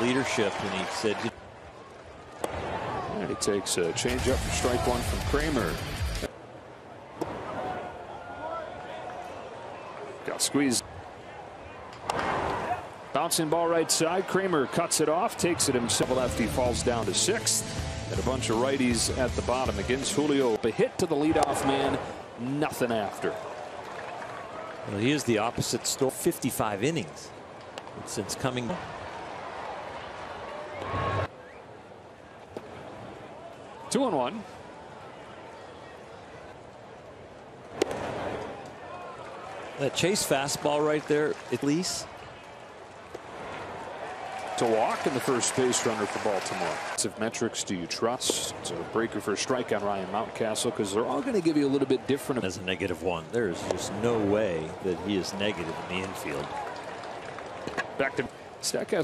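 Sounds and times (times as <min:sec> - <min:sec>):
crowd noise: 0:00.0 - 0:59.0
baseball popping into catcher's mitt: 0:37.8 - 0:38.1
bat hitting ball: 0:37.8 - 0:38.2.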